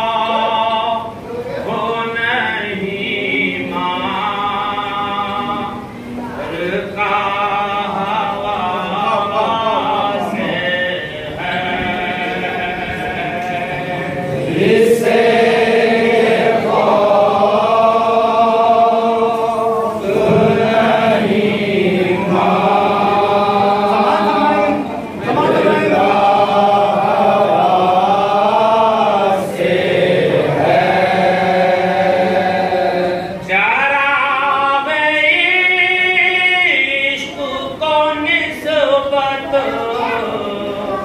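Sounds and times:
men chanting in unison: 0.0 - 41.0.

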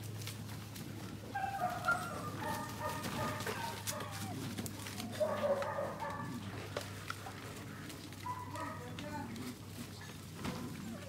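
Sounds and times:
puppies whining and yelping: 1.3 - 6.3, 9.9 - 11.0.

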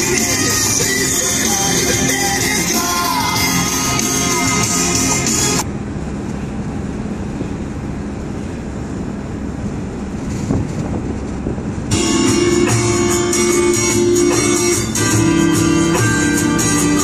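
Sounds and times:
background music: 0.0 - 5.6, 11.9 - 17.0
vehicle road and engine noise: 0.0 - 17.0.

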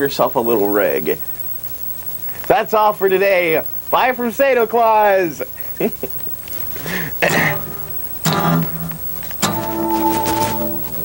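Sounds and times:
electric guitar chord ringing: 7.3 - 11.0.

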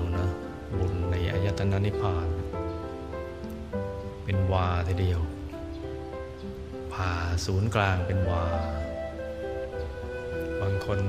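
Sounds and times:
person speaking: 0.0 - 2.5
ambient music with sustained notes: 0.0 - 11.0
steady hiss: 0.0 - 11.0.

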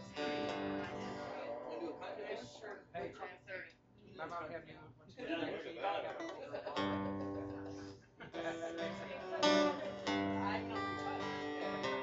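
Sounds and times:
acoustic guitar chord strummed: 0.0 - 3.1, 6.8 - 12.0.

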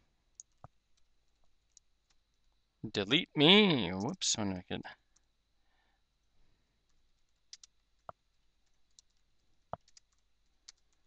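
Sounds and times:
keyboard keystroke clicks: 7.5 - 8.2.

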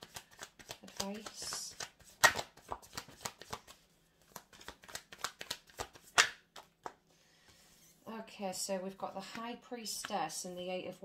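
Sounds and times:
cards being shuffled by hand: 0.0 - 7.7.

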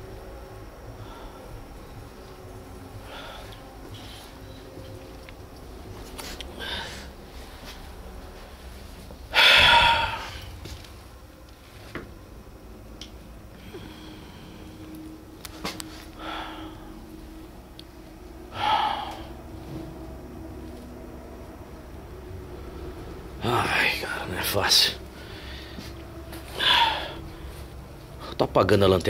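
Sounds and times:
faint low hum: 0.0 - 29.0
person exhaling heavily: 3.1 - 4.2, 6.5 - 7.2, 9.3 - 10.7, 13.6 - 14.9, 16.2 - 17.1, 18.5 - 19.5, 25.2 - 27.6.

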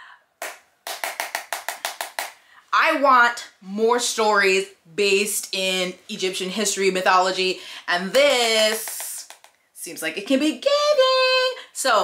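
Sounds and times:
hand claps: 0.4 - 2.4, 8.6 - 9.6.

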